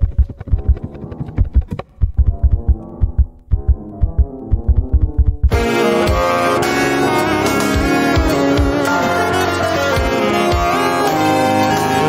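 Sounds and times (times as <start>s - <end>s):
low electronic pulse: 0.0s - 9.1s
sparse piano figures: 2.3s - 12.0s.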